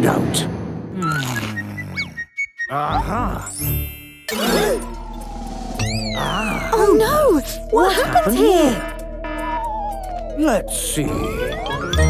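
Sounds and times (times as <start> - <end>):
playful cartoon music: 0.0 - 12.0.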